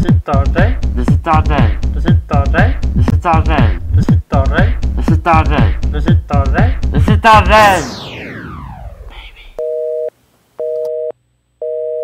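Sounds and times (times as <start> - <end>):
falling tone sweep: 7.5 - 9.6.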